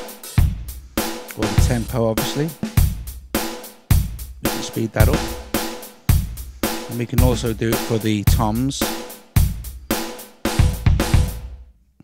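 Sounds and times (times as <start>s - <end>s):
rock drum kit pattern: 0.0s - 11.7s.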